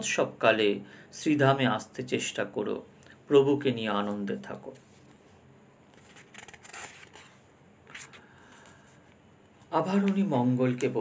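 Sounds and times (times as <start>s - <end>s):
soft rustle: 4.6s - 10.9s.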